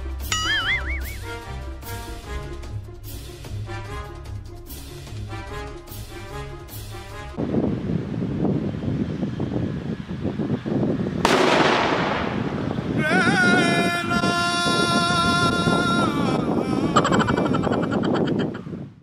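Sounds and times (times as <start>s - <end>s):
whistling tone: 0.3s - 1.3s
firecrackers crackling: 11.2s - 13.0s.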